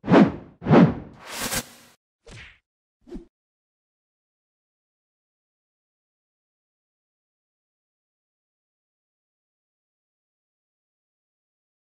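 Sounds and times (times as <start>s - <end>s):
swooping whooshes with hits: 0.0s - 2.0s.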